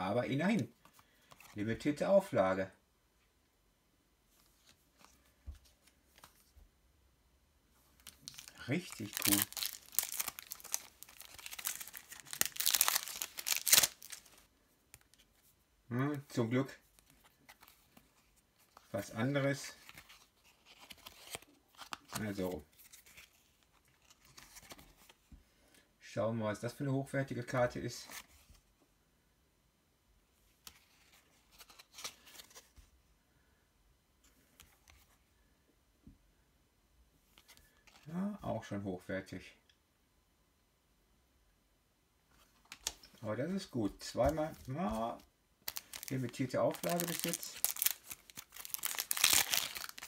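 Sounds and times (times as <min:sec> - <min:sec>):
cards being handled: 0:08.0 - 0:15.4, 0:17.0 - 0:25.3, 0:30.6 - 0:32.9, 0:42.4 - 0:50.0
foil wrapper crinkling: 0:08.1 - 0:14.4, 0:45.6 - 0:50.0.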